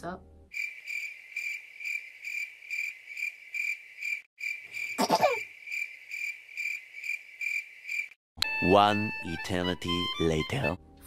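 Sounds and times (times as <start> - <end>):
crickets chirping: 0.5 - 8.2.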